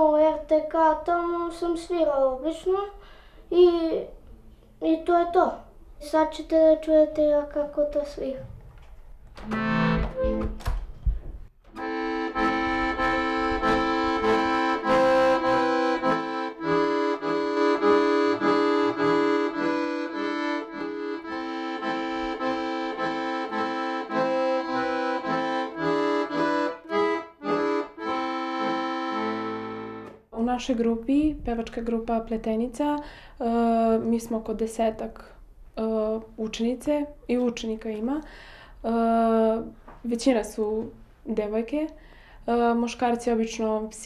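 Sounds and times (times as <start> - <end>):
piano accordion playing a tune: 9.4 - 10.6, 11.7 - 30.2.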